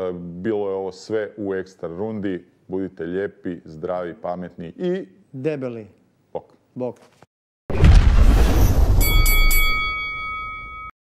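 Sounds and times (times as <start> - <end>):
bright bell-like chime: 9.0 - 11.0.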